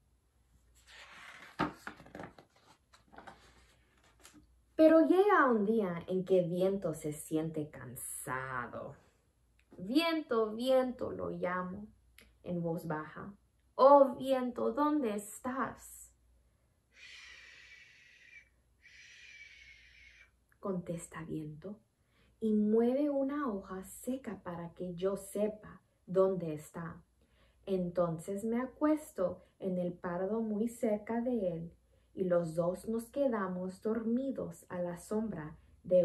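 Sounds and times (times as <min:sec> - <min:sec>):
book pages rustling: 0:00.6 - 0:04.5
woman blowing air through lips: 0:16.9 - 0:20.4.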